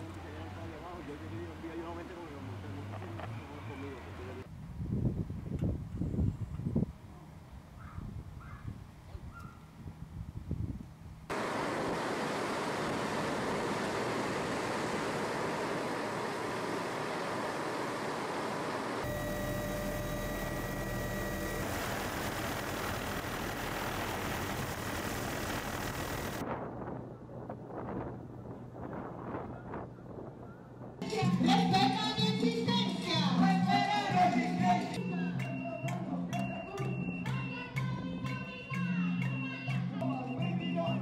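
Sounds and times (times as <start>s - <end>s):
faint outdoor sounds: 0.0s - 41.0s
loud rush of noise: 11.3s - 19.2s
helicopter engine and rotor roar: 11.3s - 26.4s.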